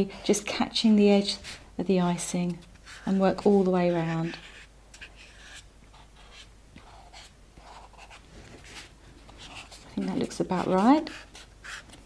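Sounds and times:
rolling pin rubbing and scraping: 0:02.2 - 0:05.7.

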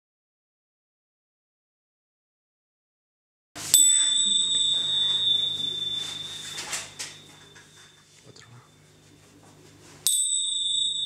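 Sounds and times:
faint low hum: 0:03.6 - 0:11.0
small bell ringing: 0:03.7 - 0:08.9, 0:10.0 - 0:11.0.

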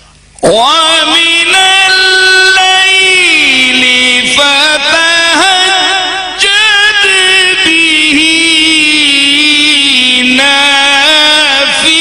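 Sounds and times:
man reciting melodically: 0:00.4 - 0:12.0.

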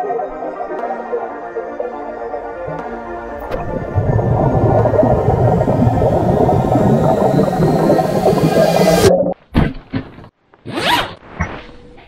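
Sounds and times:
underwater bubbles and moving water: 0:01.9 - 0:09.4
faint rising whine: 0:02.2 - 0:09.3.

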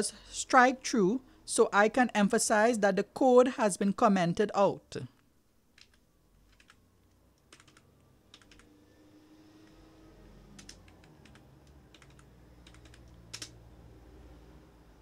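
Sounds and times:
computer keyboard keystrokes: 0:05.8 - 0:06.8, 0:07.4 - 0:08.7, 0:10.6 - 0:13.6.

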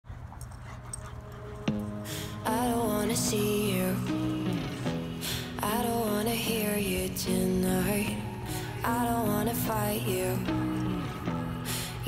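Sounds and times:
dogs making play noises: 0:00.1 - 0:02.1.

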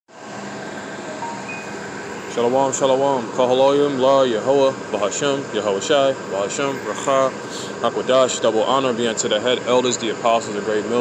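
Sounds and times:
droning background noise: 0:00.1 - 0:11.0.

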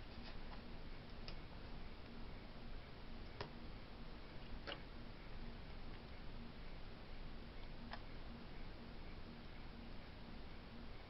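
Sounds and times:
steady room hiss: 0:00.0 - 0:11.0.

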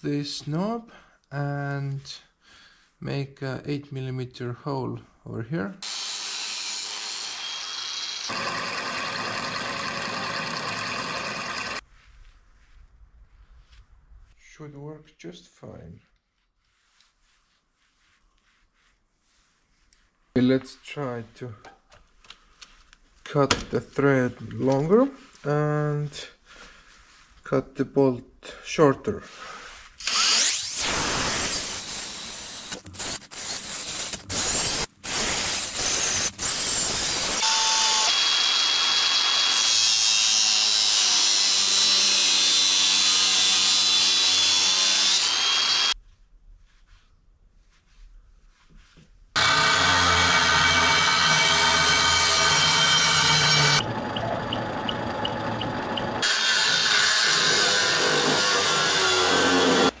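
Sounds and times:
cordless drill boring into steel: 0:05.8 - 0:11.8, 0:30.0 - 0:46.0, 0:49.4 - 1:00.0.

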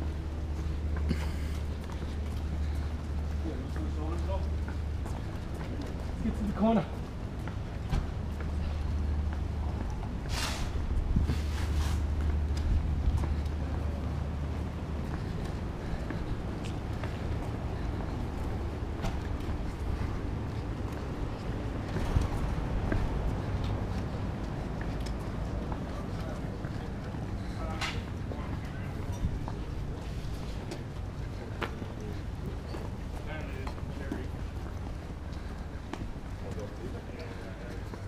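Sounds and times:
footsteps of boots on pavement: 0:00.0 - 0:38.0
steady low hum: 0:00.0 - 0:38.0
short rushes of hiss: 0:10.3 - 0:10.8.

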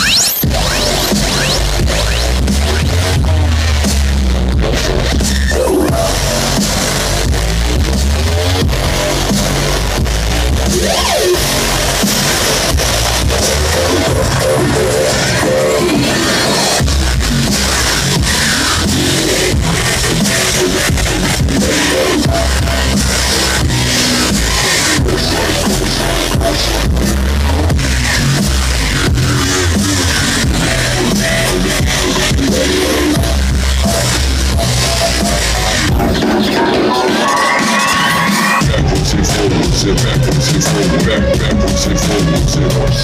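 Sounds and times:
loud electronic dance music: 0:00.0 - 0:43.0.

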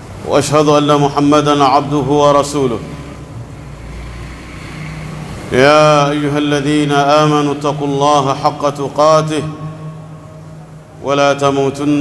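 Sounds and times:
person speaking: 0:05.5 - 0:10.3, 0:10.9 - 0:12.0.

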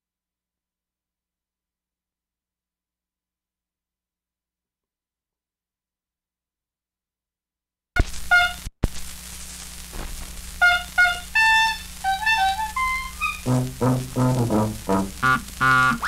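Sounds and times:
record surface noise: 0:08.0 - 0:16.0
brass-led dance band music: 0:10.6 - 0:16.0.

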